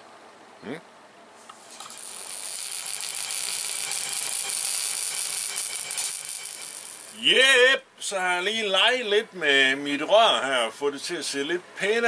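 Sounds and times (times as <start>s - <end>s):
angle grinder grinding metal: 1.5s - 7.2s.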